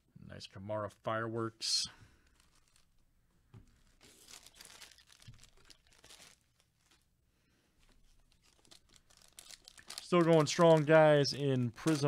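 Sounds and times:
foil wrapper crinkling and tearing: 0:02.2 - 0:03.0, 0:03.7 - 0:07.1, 0:08.1 - 0:12.0.

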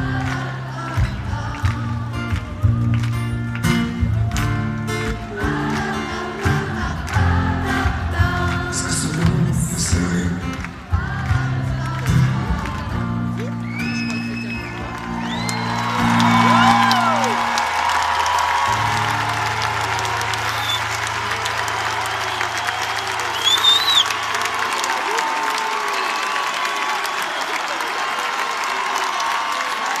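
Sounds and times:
crowd applauding and cheering: 0:00.0 - 0:30.0.

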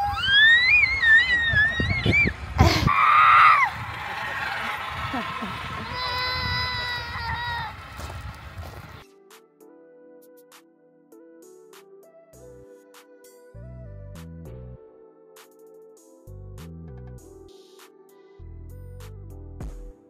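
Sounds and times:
child squealing: 0:00.0 - 0:03.8, 0:05.1 - 0:07.9
rush of noise: 0:00.1 - 0:09.0
soft background music: 0:09.0 - 0:20.0.

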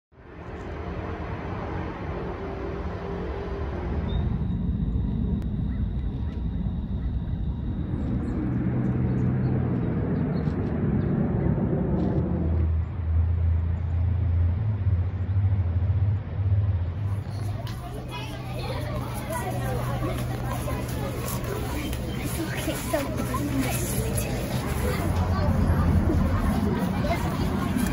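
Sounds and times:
motor vehicle engine rumble: 0:00.6 - 0:27.9.

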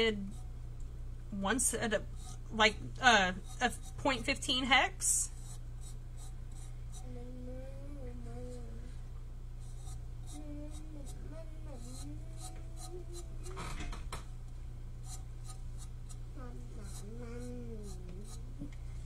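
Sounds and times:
electrical hum: 0:00.0 - 0:19.0
small ticks and scratches: 0:02.0 - 0:04.6, 0:05.3 - 0:07.1, 0:09.6 - 0:14.2, 0:15.0 - 0:18.8
low voice or humming: 0:07.0 - 0:09.0, 0:10.4 - 0:14.0, 0:16.4 - 0:18.8.

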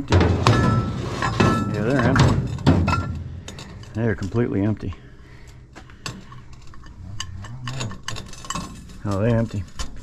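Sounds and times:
metallic clicks of gas cylinders: 0:01.8 - 0:10.0.

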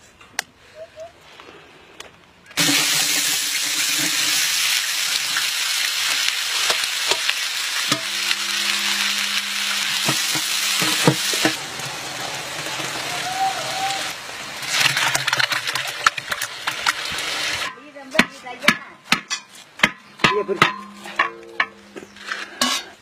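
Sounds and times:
onions sizzling in hot oil: 0:02.6 - 0:17.7.

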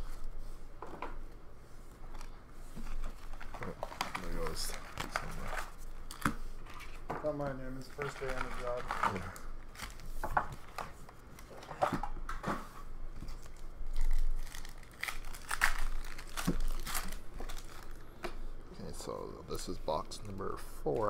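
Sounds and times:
foil packs tearing and crinkling: 0:03.2 - 0:06.2, 0:07.8 - 0:10.1, 0:13.4 - 0:18.0.

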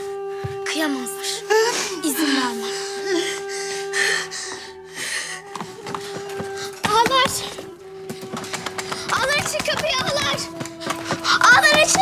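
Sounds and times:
sustained note background music: 0:00.0 - 0:12.0.

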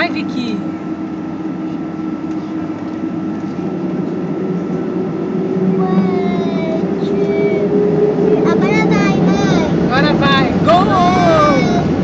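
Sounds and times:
airplane cabin hum: 0:00.0 - 0:12.0.

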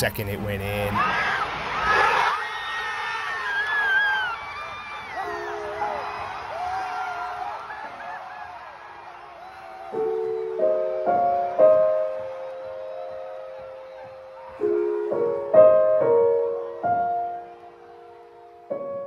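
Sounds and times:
stadium crowd cheering: 0:00.1 - 0:19.0
piano chords: 0:05.2 - 0:07.0, 0:09.8 - 0:19.0.

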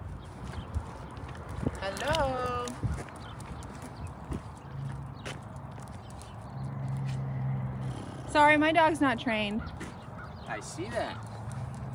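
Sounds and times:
footsteps on concrete: 0:00.2 - 0:07.5, 0:09.6 - 0:11.9.

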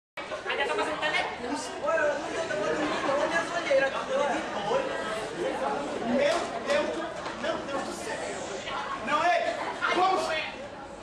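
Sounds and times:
people talking at once: 0:00.2 - 0:11.0.

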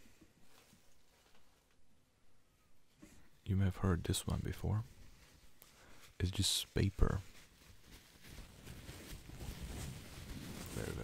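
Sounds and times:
paper crumpling and crinkling: 0:04.2 - 0:11.0.

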